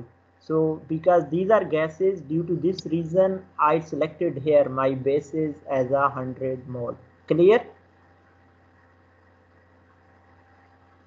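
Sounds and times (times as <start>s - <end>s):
faint low hum and hiss: 0.0s - 11.0s.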